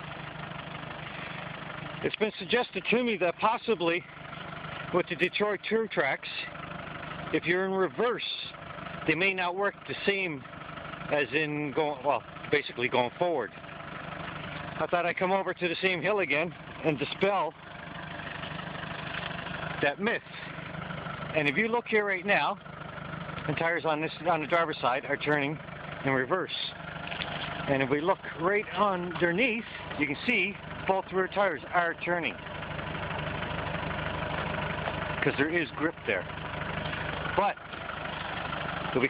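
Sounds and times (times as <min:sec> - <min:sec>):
car engine idling: 0:00.0 - 0:39.0.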